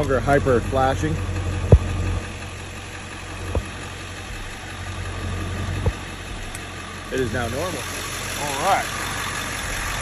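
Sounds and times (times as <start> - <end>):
low engine hum: 0.0 - 10.0
turn signal relay clicking: 1.6 - 4.7, 5.7 - 6.8.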